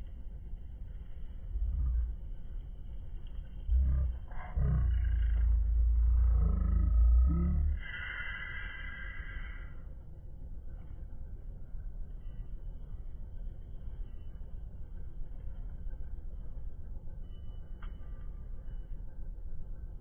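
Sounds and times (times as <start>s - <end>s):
loud low rumble: 0.9s - 9.9s.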